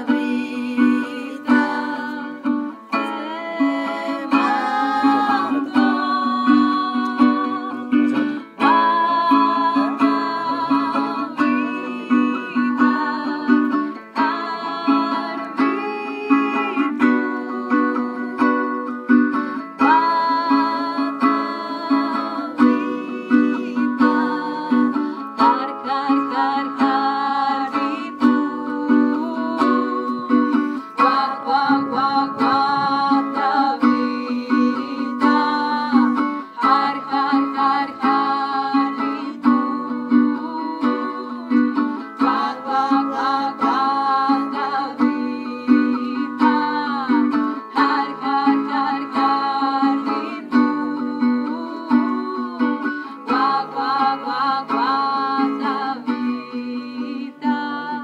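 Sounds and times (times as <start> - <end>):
acoustic guitar strumming: 0.0 - 58.0
person singing: 0.0 - 58.0.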